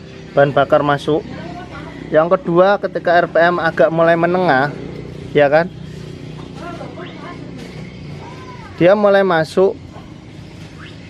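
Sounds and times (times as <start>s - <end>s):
scooter engine idling: 0.0s - 11.0s
faint voices: 0.4s - 10.4s.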